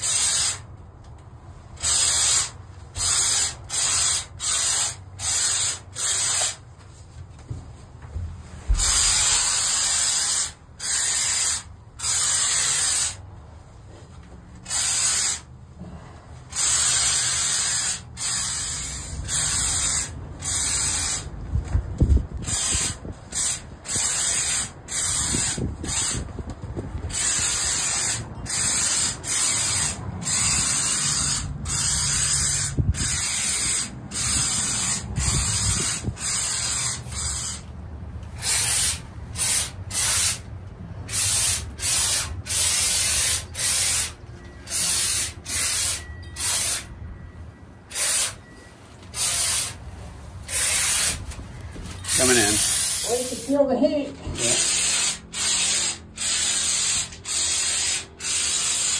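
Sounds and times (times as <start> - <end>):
spray foam gun hissing: 0.0 - 0.6, 1.8 - 6.6, 8.7 - 13.2, 14.6 - 15.5, 16.5 - 21.3, 22.4 - 26.3, 27.1 - 37.6, 38.4 - 40.5, 41.1 - 44.1, 44.7 - 46.9, 47.9 - 48.4, 49.1 - 49.8, 50.5 - 51.2, 52.0 - 53.6, 54.4 - 58.9.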